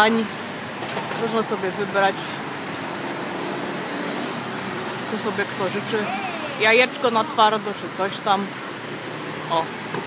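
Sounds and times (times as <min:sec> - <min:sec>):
road traffic: 0:00.0 - 0:10.0
eatery background din: 0:05.1 - 0:08.6.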